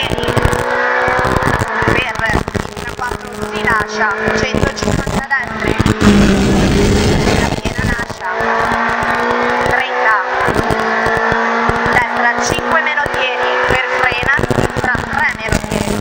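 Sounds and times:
car engine at full throttle: 0.0s - 16.0s.

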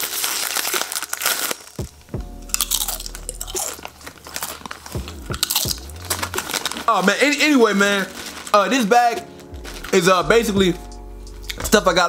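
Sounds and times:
tortilla chips crunching: 0.0s - 11.8s.

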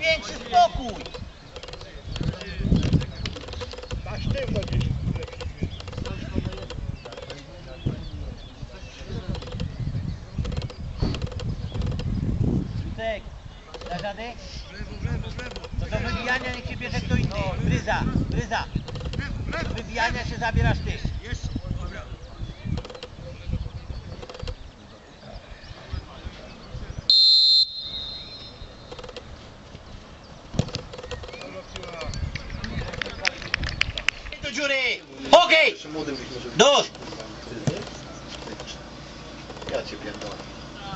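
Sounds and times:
wind buffeting microphone: 0.0s - 27.1s, 28.6s - 34.5s
referee's whistle blast: 27.1s - 28.7s.

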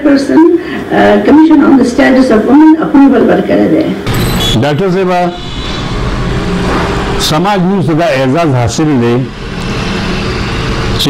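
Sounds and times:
man speaking: 4.6s - 5.4s, 7.2s - 9.3s
steady rushing noise: 4.8s - 11.0s.

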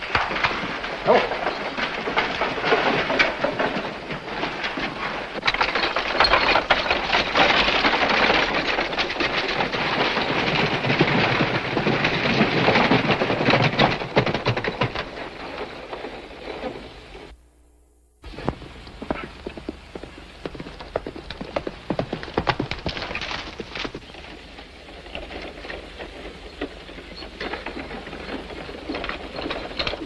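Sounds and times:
horses galloping on dirt: 0.0s - 17.3s, 18.2s - 30.0s.

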